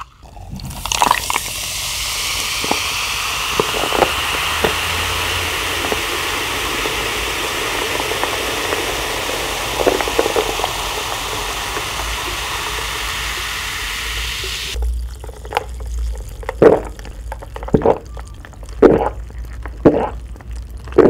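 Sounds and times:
drink sipped through a straw: 0:00.0 - 0:13.7, 0:14.6 - 0:21.0
fizzing hiss: 0:00.6 - 0:14.8
swallowing: 0:15.3 - 0:21.0.

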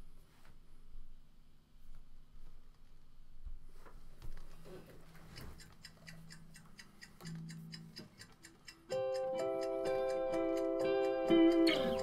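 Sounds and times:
steady ticking beat: 0:05.3 - 0:12.0.

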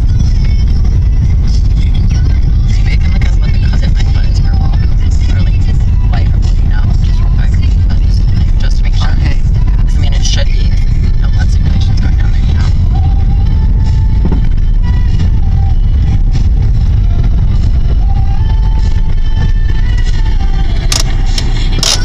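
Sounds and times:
car road and engine rumble: 0:00.0 - 0:22.0
people talking: 0:02.1 - 0:12.9.

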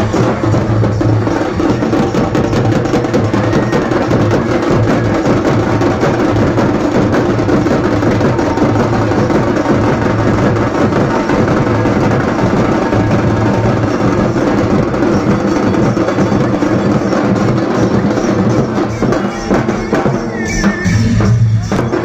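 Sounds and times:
barrel drums beaten with sticks: 0:00.0 - 0:22.0.

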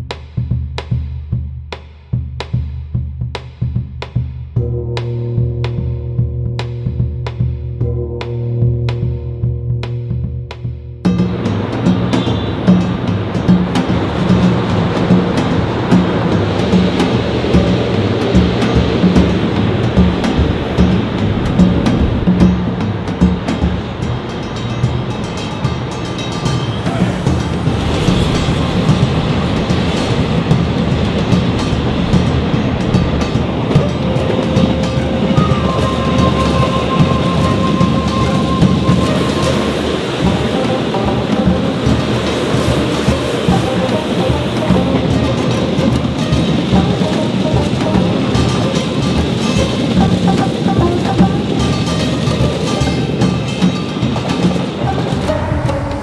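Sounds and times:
background music: 0:04.5 - 0:56.0
electric trains rumbling past: 0:04.6 - 0:56.0
high whine: 0:04.6 - 0:56.0
wheels clattering over rails: 0:11.1 - 0:56.0.

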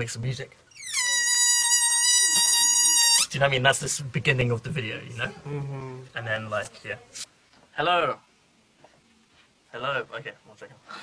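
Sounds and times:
balloon squealing as air escapes: 0:00.7 - 0:03.3.

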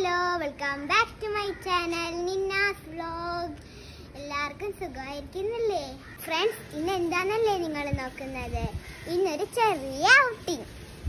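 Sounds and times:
girl singing: 0:00.0 - 0:10.7.

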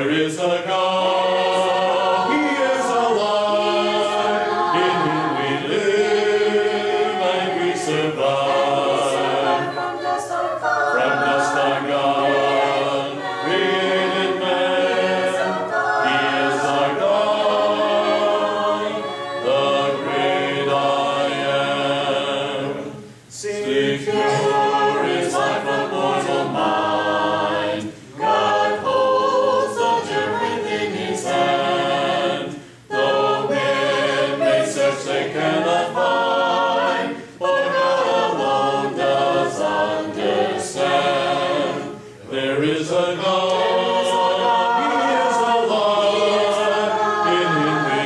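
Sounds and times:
congregation singing a hymn: 0:00.0 - 0:48.0.

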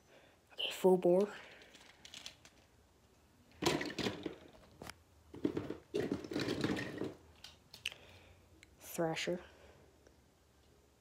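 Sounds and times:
plastic toys rustling and crunching: 0:01.0 - 0:02.8, 0:03.5 - 0:08.0.

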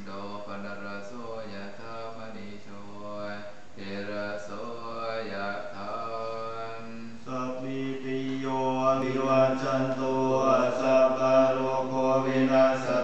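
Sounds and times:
monks chanting in monotone: 0:00.0 - 0:13.0.

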